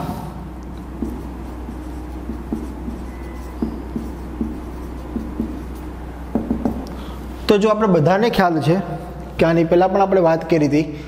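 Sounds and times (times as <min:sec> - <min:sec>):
steady low hum: 0:00.0 - 0:11.0
marker squeaking on whiteboard: 0:00.7 - 0:07.0.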